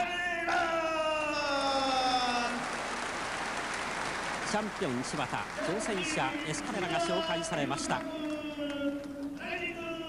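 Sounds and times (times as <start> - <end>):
crowd applauding: 1.4 - 9.6.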